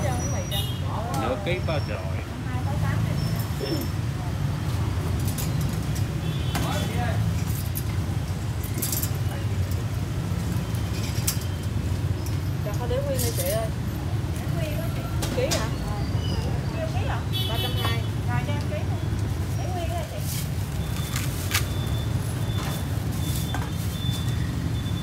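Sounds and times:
traffic and engines rumble: 0.0s - 25.0s.

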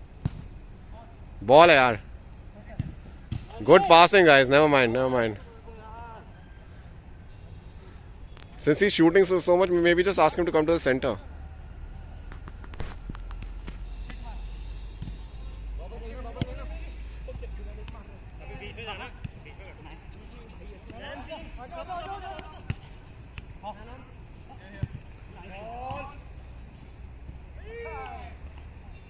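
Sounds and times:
ball being kicked: 0.2s - 0.5s
players calling out: 0.9s - 29.0s.

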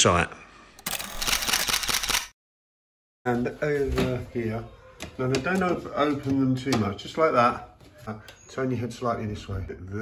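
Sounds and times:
rapid camera shutter clicks: 0.8s - 2.4s.

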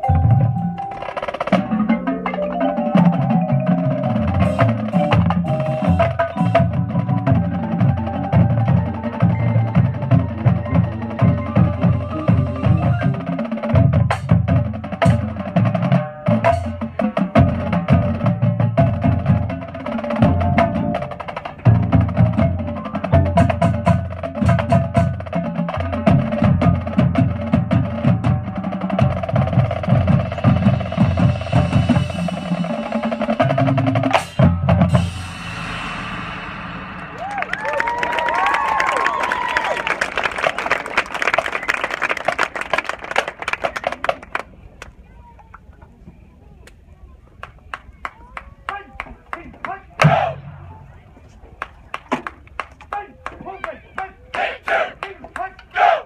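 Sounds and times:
mallet keyboards: 0.0s - 36.0s
marching band playing: 0.0s - 44.4s, 49.6s - 50.8s, 54.3s - 56.0s.

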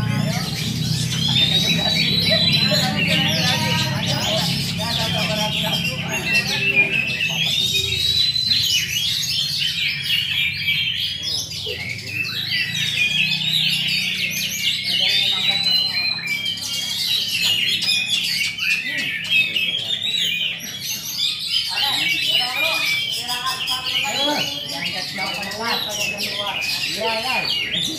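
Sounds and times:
songbirds singing in chorus: 0.0s - 27.9s.

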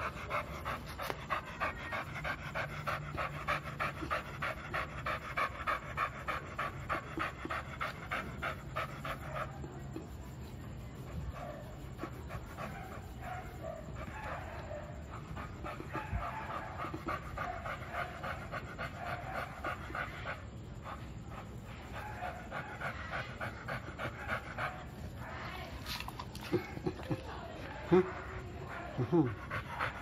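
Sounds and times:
dog panting: 0.0s - 30.0s.

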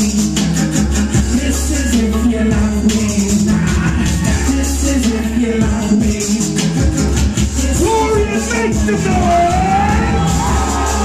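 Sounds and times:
loud hip-hop music: 0.0s - 11.0s.

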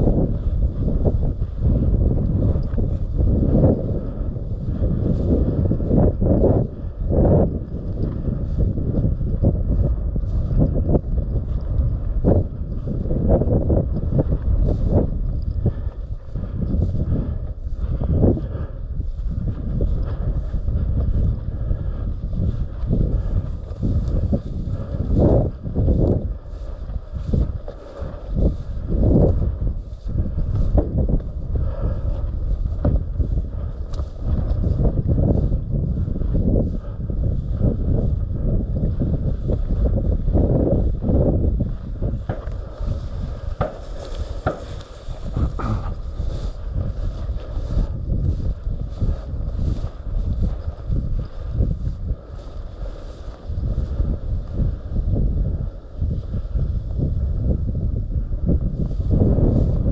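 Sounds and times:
dry grass rustling: 0.0s - 57.9s
wind buffeting microphone: 0.0s - 59.9s.

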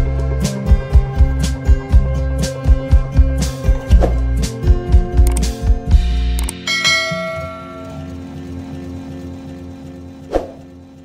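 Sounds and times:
background music with soft beat: 0.0s - 9.1s
bell-like chime: 6.5s - 8.4s.

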